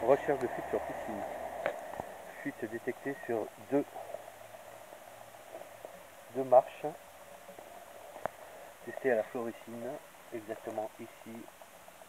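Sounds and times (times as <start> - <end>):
background hiss: 0.0 - 12.0
low hum: 0.0 - 12.0
faint ticks: 1.2 - 12.0.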